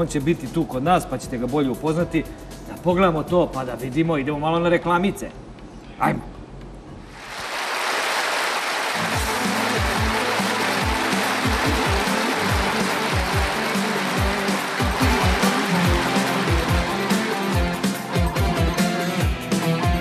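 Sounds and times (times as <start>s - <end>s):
electric guitar playing: 9.0s - 20.0s.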